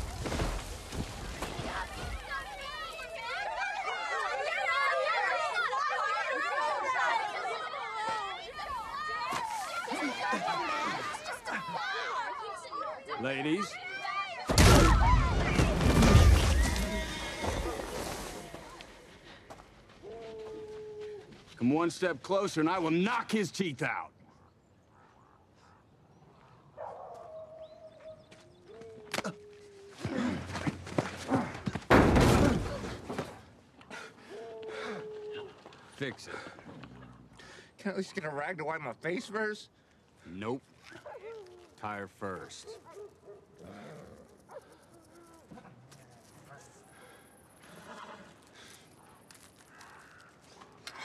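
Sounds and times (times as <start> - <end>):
dogs howling faintly: 20.0 - 21.4, 25.0 - 30.1, 34.3 - 35.7.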